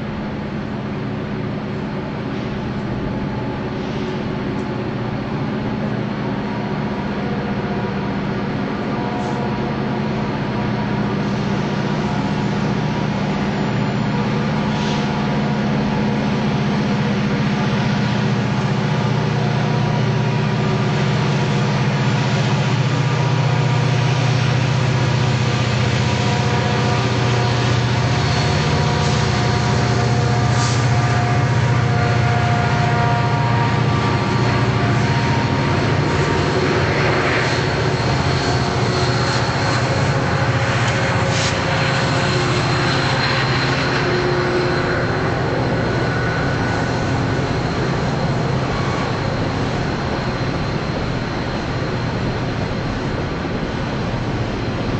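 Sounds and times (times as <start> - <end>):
train wheels rumbling on rail: 0.0 - 54.9
high-pitched wheel squeals: 23.7 - 52.2.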